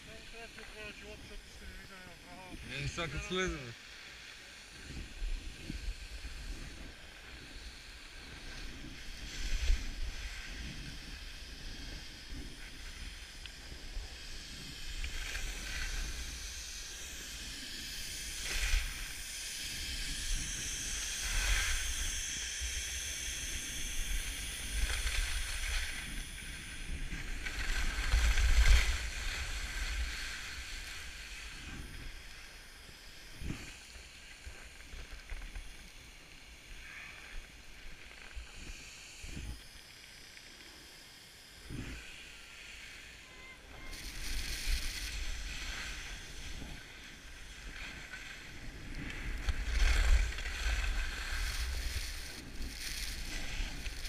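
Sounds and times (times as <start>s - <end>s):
wind rumbling on microphone: 0.0s - 3.7s, 4.5s - 40.2s, 41.4s - 54.0s
skis scraping over snow: 0.0s - 39.6s, 41.7s - 54.0s.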